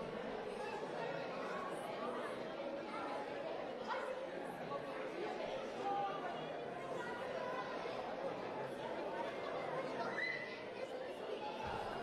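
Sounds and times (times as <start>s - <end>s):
crowd chatter in a large hall: 0.0s - 12.0s.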